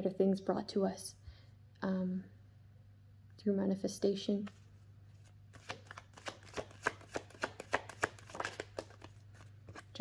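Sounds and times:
cards being shuffled: 4.4s - 10.0s.

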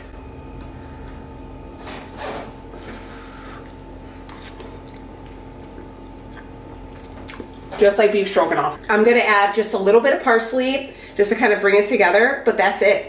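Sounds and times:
low electrical hum: 0.0s - 13.0s
person chewing quietly: 3.0s - 7.7s.

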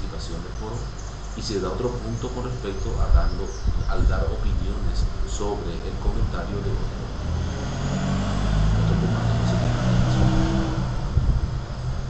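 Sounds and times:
low engine rumble: 0.0s - 12.0s
steady low tones: 0.0s - 12.0s.

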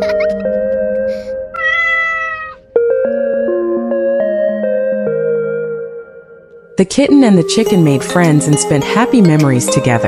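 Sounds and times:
cat meowing: 1.6s - 2.7s
gentle background music: 2.6s - 10.0s.

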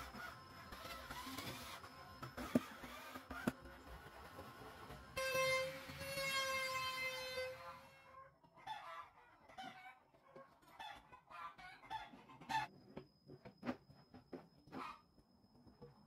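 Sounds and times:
faint high whine: 0.0s - 7.8s, 12.7s - 16.0s
chickens clucking: 8.4s - 12.7s.

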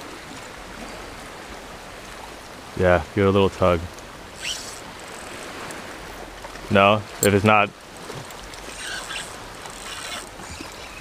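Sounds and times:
small waves lapping: 0.0s - 11.0s
high squeak: 4.4s - 4.8s, 8.7s - 11.0s.

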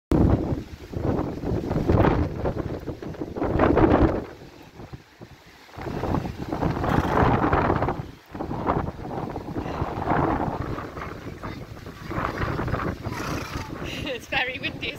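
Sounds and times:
wind buffeting microphone: 0.1s - 14.9s.

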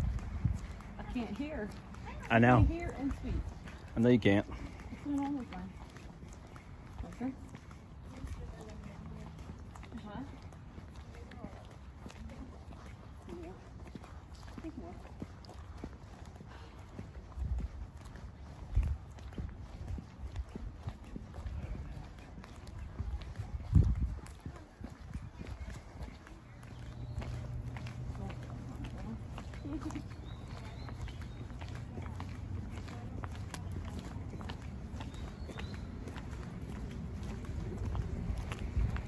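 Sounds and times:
footsteps on pavement: 0.0s - 39.0s.

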